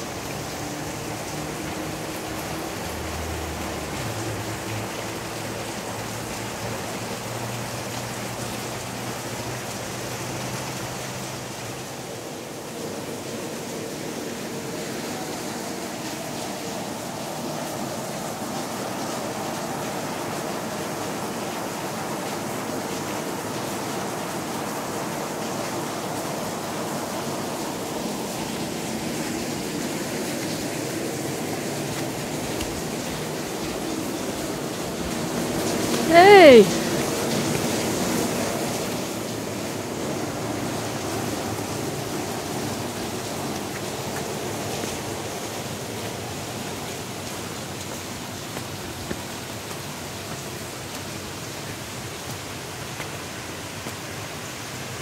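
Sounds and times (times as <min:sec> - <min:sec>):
running water: 0:00.0 - 0:55.0.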